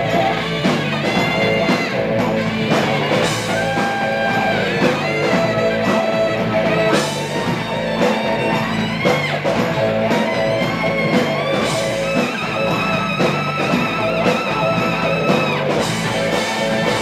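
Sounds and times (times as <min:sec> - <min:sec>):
electric guitar: 0:00.0 - 0:17.0
live rock band playing: 0:00.0 - 0:17.0
saxophone: 0:00.0 - 0:17.0.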